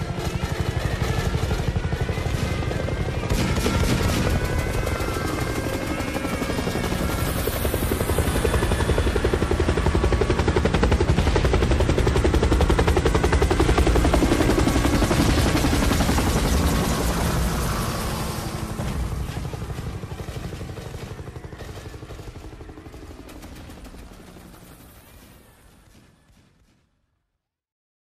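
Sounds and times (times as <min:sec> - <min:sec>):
helicopter rotor chop: 0:00.0 - 0:26.4.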